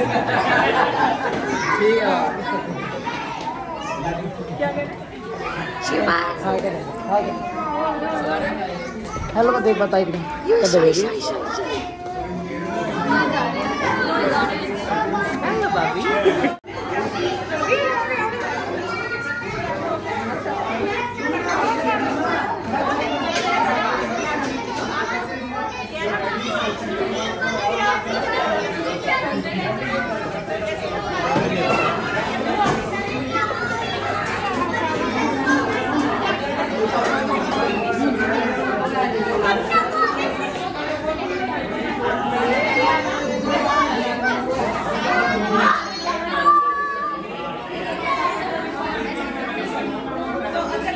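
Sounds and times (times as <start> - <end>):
crowd chatter: 0.0 - 50.9.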